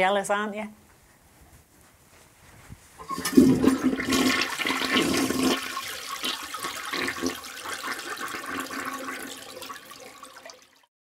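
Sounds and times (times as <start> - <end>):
toilet flushing: 3.0 - 10.9.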